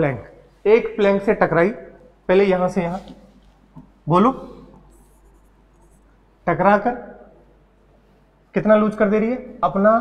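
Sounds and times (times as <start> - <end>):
man speaking: 0.0 - 3.3, 4.0 - 4.8, 8.6 - 10.0
stylus scratching on touchscreen: 4.5 - 6.2.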